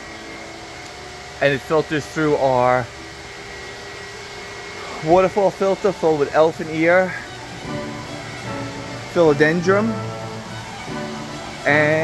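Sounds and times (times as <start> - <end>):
faint high whine: 0.0 - 12.0
pond pump hum and hiss: 0.0 - 12.0.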